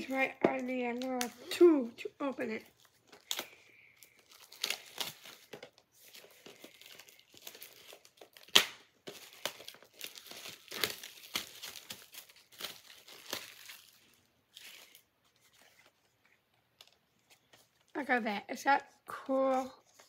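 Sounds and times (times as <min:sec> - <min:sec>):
plastic wrapping crinkling: 0:00.0 - 0:18.2.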